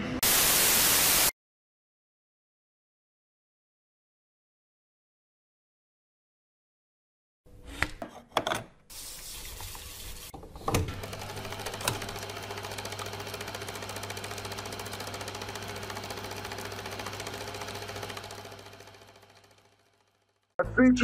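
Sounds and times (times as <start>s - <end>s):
film projector clattering: 10.6s - 20.5s.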